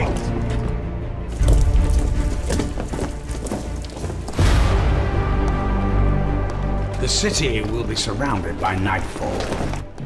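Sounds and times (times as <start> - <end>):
dramatic trailer score: 0.0 - 10.0.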